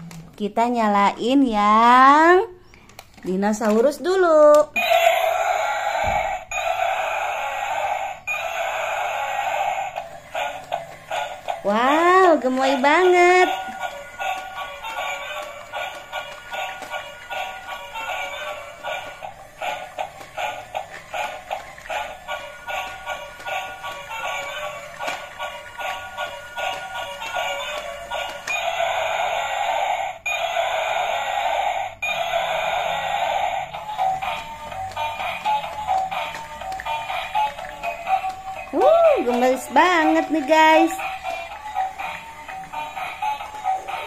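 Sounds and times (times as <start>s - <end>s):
tinny electronic toy song: 4.8s - 44.0s.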